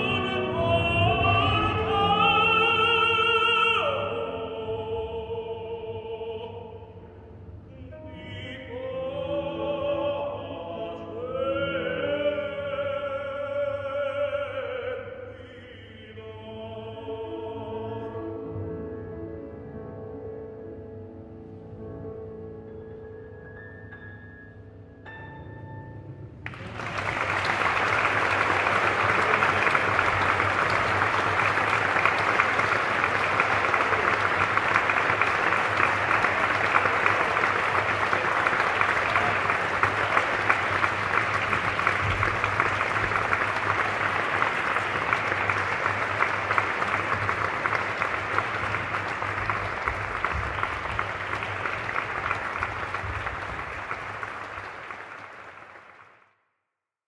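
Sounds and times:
audience applauding: 26.4 - 56.3.

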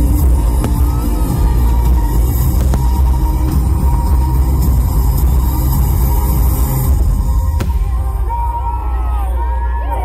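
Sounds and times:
fireworks bursting: 0.0 - 8.8.

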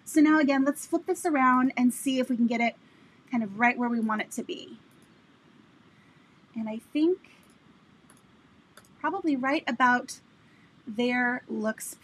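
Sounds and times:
computer mouse clicks: 4.9 - 5.2, 7.3 - 9.0.

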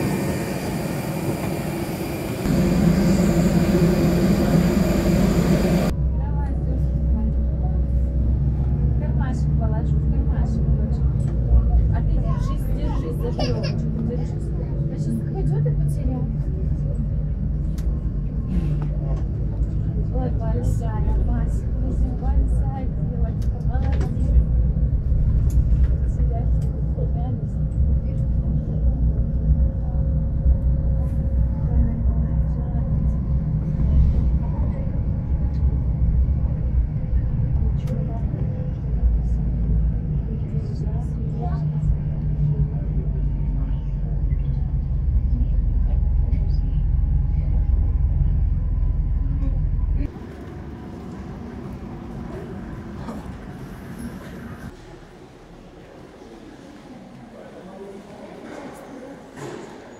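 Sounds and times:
bus engine and tyres rumbling: 0.0 - 59.9
indistinct passenger chatter: 0.0 - 59.9.

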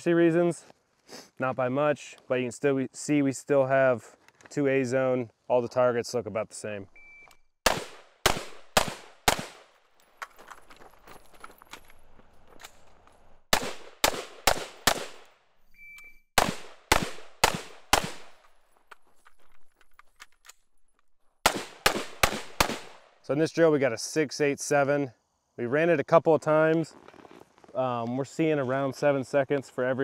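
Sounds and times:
short electronic beep: 7.0 - 7.5, 15.7 - 16.3
rifle gunshots: 7.6 - 9.7, 13.5 - 15.3, 16.4 - 18.4, 21.4 - 23.1.

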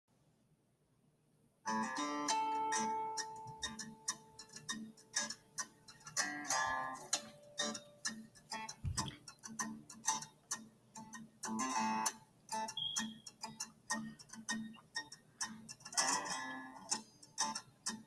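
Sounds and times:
plucked string notes: 1.7 - 18.0.

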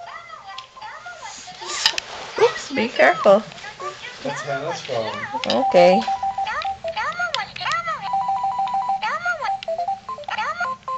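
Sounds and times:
toy phone short beeps: 5.4 - 7.2, 8.1 - 10.9.

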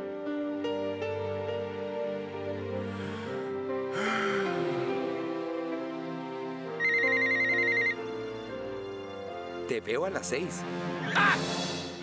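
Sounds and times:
soft background music: 0.0 - 12.0
mobile phone ringing: 6.8 - 8.0.

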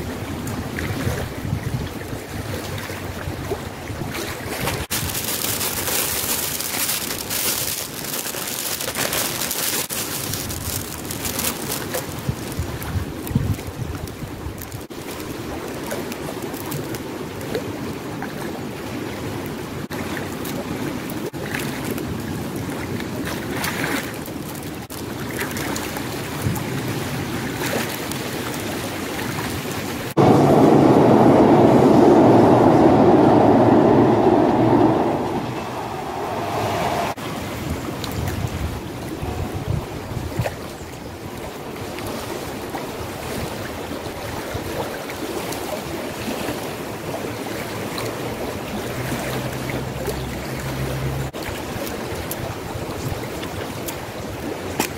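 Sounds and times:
wind on microphone: 0.0 - 14.9, 29.8 - 45.0
plastic bag rustling: 4.8 - 13.5
fast-flowing river rushing: 27.3 - 40.2
deep loud rushing noise: 30.1 - 38.1.

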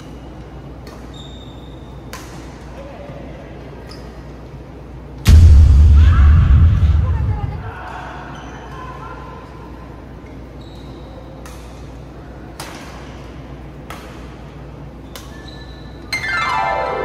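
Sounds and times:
shoes squeaking on court floor: 0.1 - 2.1, 10.2 - 11.3, 15.1 - 16.1
loud boom: 5.3 - 7.9
racket hitting shuttlecock: 12.6 - 13.0.

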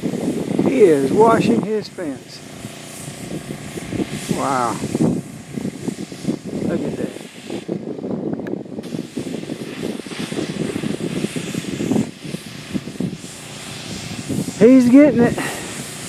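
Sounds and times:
pressure washer drone: 0.0 - 16.0.

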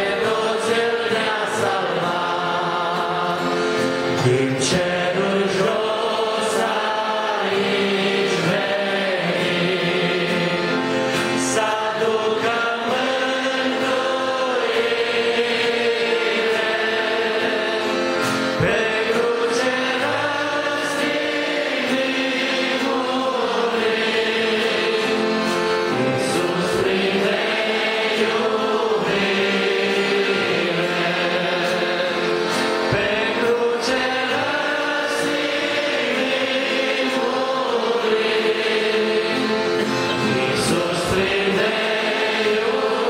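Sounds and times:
congregation singing a hymn: 0.0 - 43.0.

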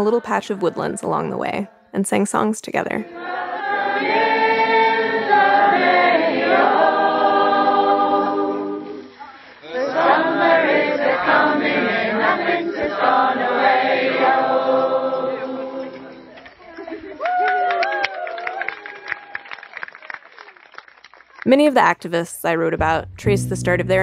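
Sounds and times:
group singing in chorus: 3.0 - 17.2.

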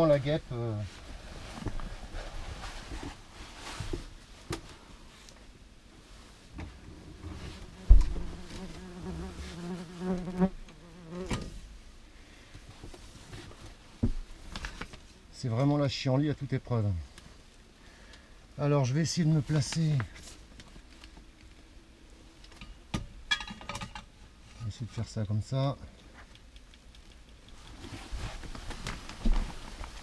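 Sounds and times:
wasps buzzing: 7.6 - 11.4.

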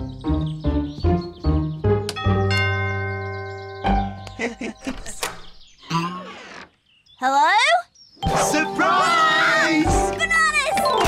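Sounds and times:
two-note doorbell chime: 2.2 - 4.3
door thud: 4.8 - 5.6.

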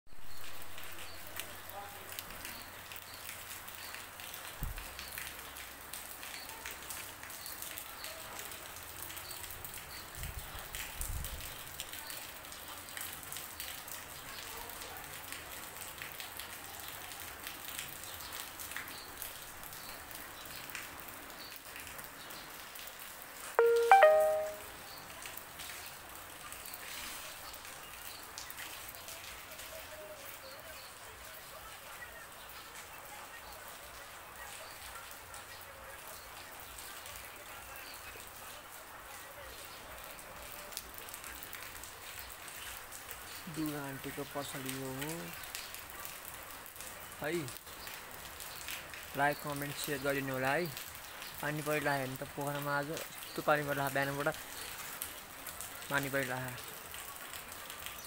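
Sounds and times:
rain on wet pavement: 0.1 - 58.0.

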